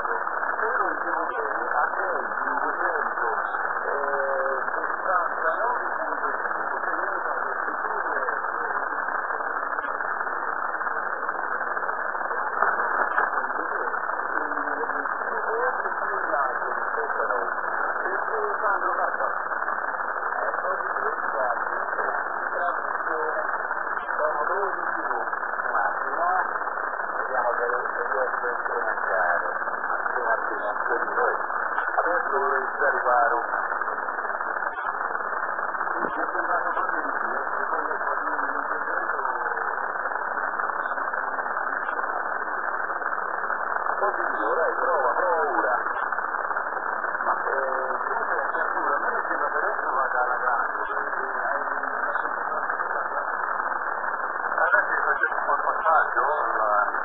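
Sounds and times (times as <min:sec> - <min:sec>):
muffled radio speech: 0:00.0 - 0:57.0
receiver noise: 0:00.0 - 0:57.0.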